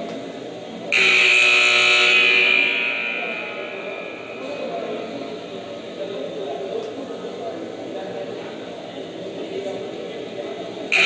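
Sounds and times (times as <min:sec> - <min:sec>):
scoreboard horn buzzing: 0:00.9 - 0:05.9.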